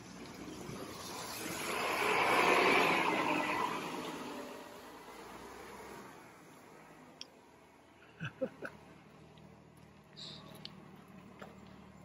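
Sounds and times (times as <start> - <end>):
vehicle driving past: 0.2 - 6.8.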